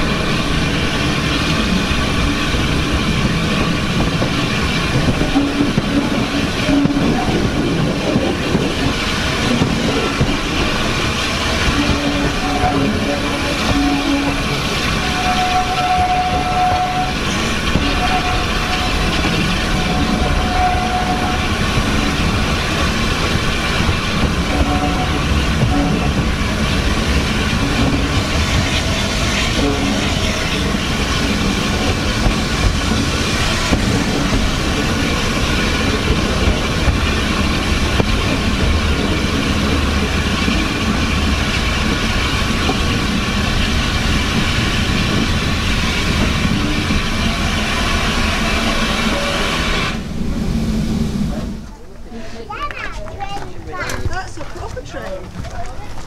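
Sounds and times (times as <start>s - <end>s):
train wheels rumbling on rail: 0.0s - 56.0s.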